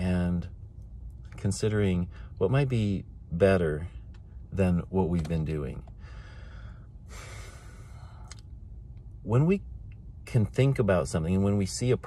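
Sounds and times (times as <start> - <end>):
car cabin rumble: 0.0 - 6.7
man sighing: 6.0 - 8.4.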